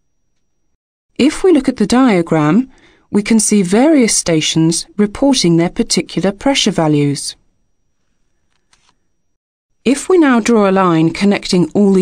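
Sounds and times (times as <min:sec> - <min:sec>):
person narrating: 0:01.2 - 0:07.4, 0:09.9 - 0:12.0.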